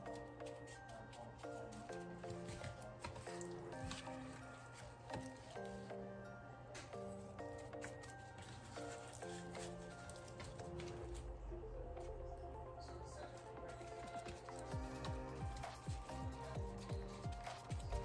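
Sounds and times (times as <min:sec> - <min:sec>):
gloved hands handling meat: 0:00.0 - 0:11.4, 0:13.7 - 0:18.0
soft instrumental music: 0:00.0 - 0:18.0.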